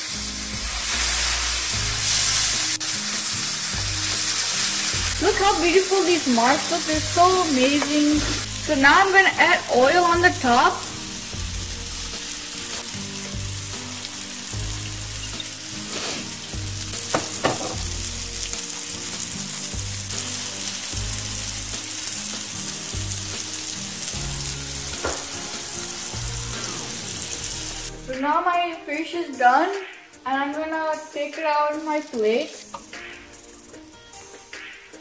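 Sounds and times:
fish sizzling on a grill: 0.0s - 28.0s, 30.2s - 35.0s.

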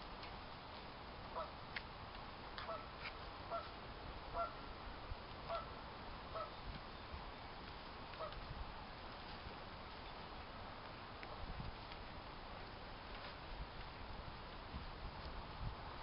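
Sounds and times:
geese honking: 3.5s - 3.7s, 4.3s - 4.6s, 5.5s - 5.7s, 6.3s - 6.5s.

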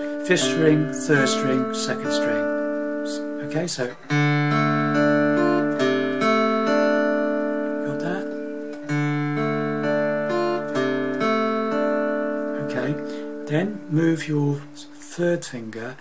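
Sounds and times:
acoustic guitar picked notes: 0.0s - 16.0s.

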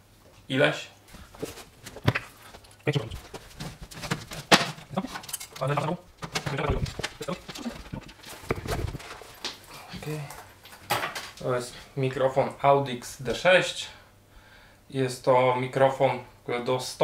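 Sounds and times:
deep low thumps: 7.6s - 9.0s.

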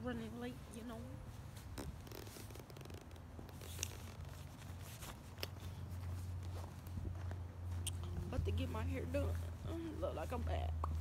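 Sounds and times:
nylon jacket rustling: 1.2s - 7.0s
phone microphone handling noise: 1.6s - 5.7s
low rumble: 7.0s - 11.0s.

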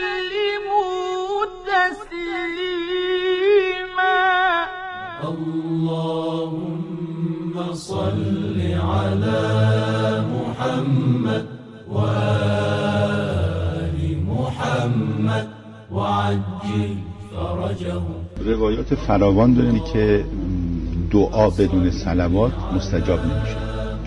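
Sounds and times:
men chanting religious recitation: 0.0s - 24.0s.

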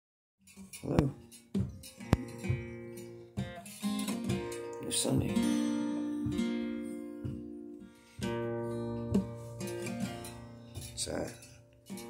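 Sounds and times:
acoustic guitar chords ringing: 0.8s - 12.0s.

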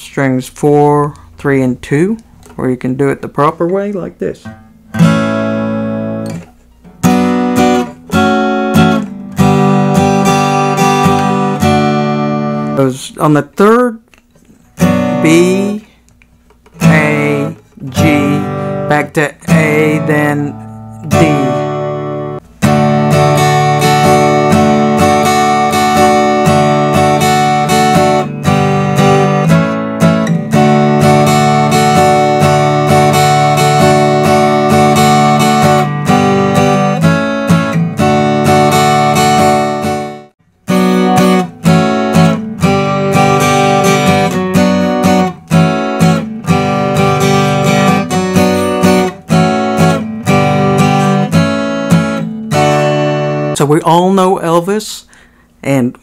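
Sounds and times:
acoustic guitar strumming: 0.2s - 13.9s, 14.5s - 54.7s.

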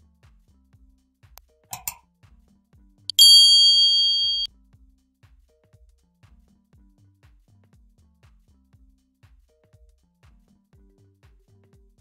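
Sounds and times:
bright ding sound effect: 3.1s - 4.5s
short clinks: 3.1s - 4.5s.

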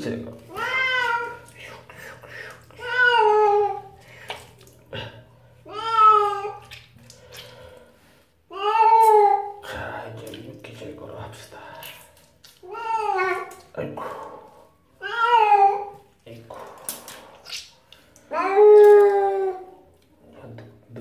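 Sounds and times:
cat meowing: 0.5s - 1.4s.

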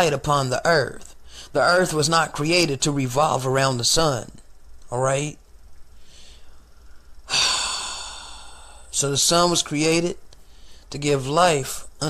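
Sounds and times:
man sighing: 7.3s - 8.9s.

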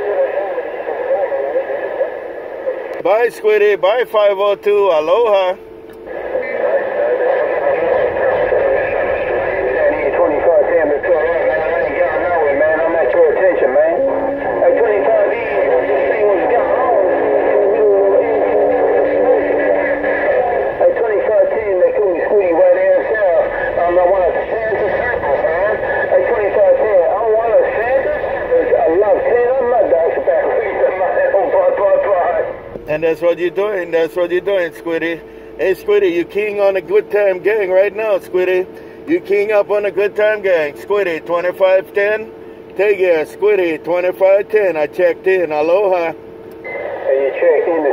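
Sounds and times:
garbled radio voices: 0.0s - 47.9s
radio static: 0.0s - 47.9s
steady tone: 2.1s - 43.8s.

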